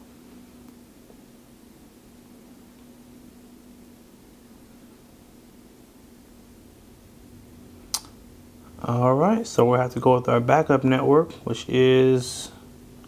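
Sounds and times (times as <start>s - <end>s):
steady low hum: 0.0s - 13.0s
sharp click: 7.9s - 8.2s.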